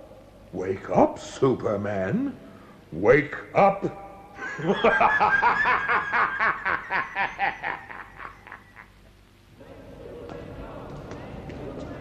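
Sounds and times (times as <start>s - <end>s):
person laughing: 4.4s - 9.0s.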